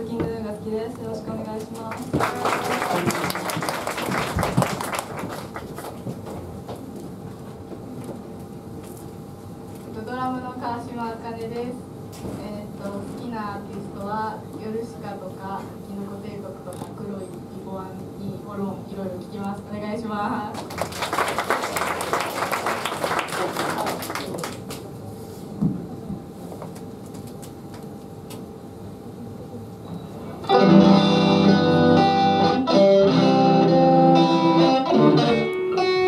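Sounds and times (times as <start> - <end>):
audience applause: 1.9 - 6.1, 20.6 - 24.8.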